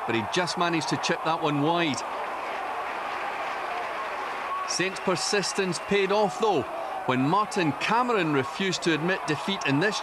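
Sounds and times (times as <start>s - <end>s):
stadium crowd voices: 0.0s - 10.0s.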